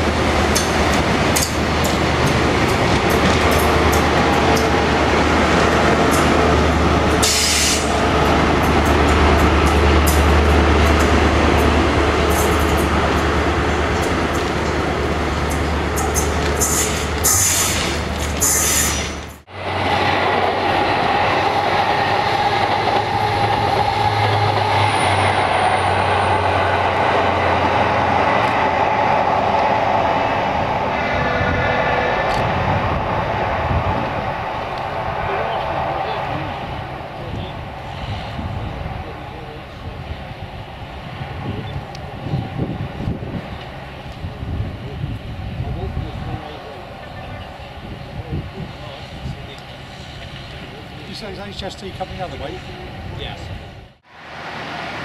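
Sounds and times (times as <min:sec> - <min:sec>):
diesel train engine approaching: 0:00.0 - 0:55.0
train passing at speed: 0:00.0 - 0:55.0.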